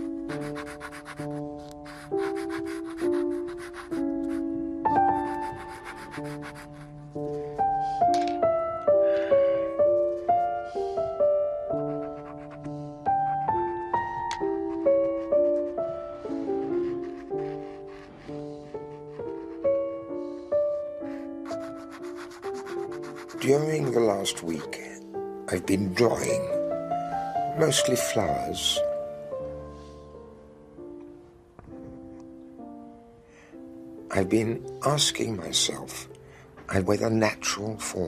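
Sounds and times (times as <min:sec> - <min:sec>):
slow music with sustained notes: 0:00.0 - 0:38.0
pastel scratching on paper: 0:00.3 - 0:04.5, 0:05.1 - 0:07.1, 0:11.8 - 0:13.9, 0:14.5 - 0:20.4, 0:21.1 - 0:24.8.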